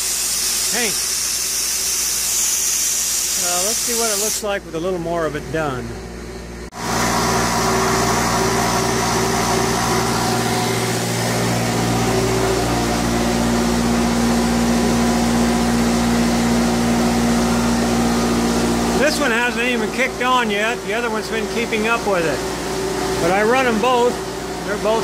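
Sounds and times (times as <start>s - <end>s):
air compressor running: 0.0s - 25.0s.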